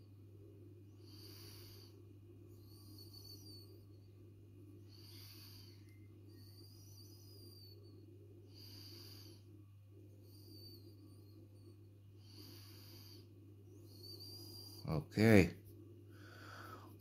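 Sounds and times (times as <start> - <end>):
faint low electrical hum: 0.0 - 17.0
soft breaths: 0.0 - 17.0.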